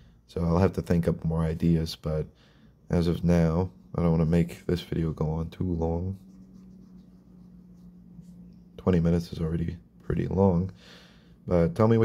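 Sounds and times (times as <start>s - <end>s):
felt-tip pen scratching paper: 6.2s - 8.4s.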